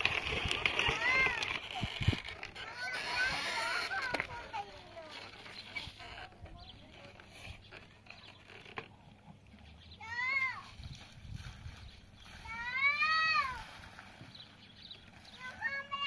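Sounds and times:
quiet outdoor background: 0.0 - 16.0.

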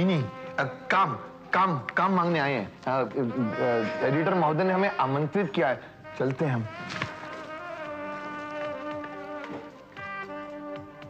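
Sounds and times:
buzzy reedy chords: 0.0 - 11.0.

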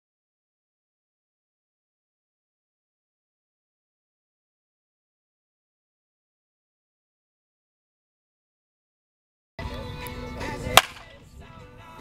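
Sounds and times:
music with held tones: 9.6 - 12.0
loud sharp crack: 10.8 - 11.2.

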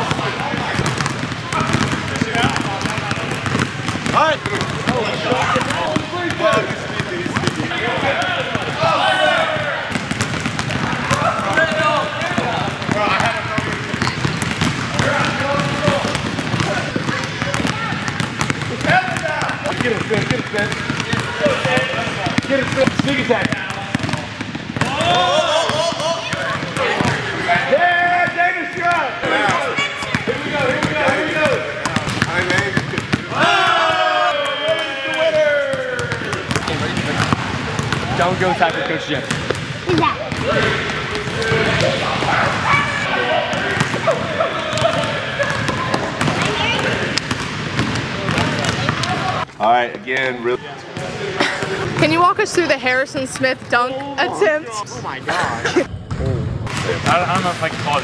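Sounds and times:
basketballs bouncing on hardwood: 0.0 - 42.8, 43.4 - 49.5, 51.0 - 54.0, 56.7 - 58.0.

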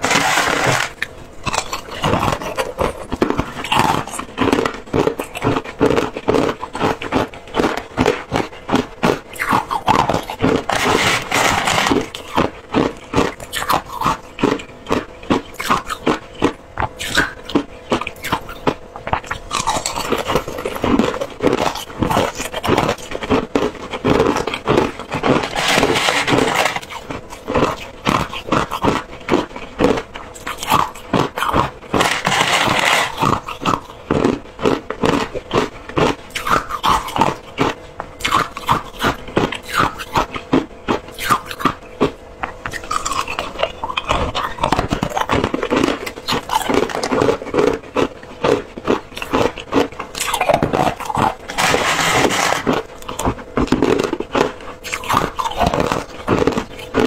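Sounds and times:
metal spoon scraping ice: 0.0 - 16.5, 23.8 - 34.3, 49.2 - 53.3
crushed ice being chewed: 0.0 - 57.0.

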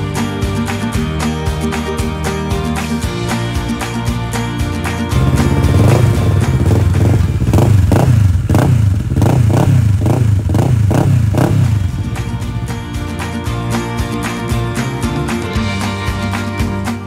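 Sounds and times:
motorcycle engine idling and revving: 5.2 - 13.1.

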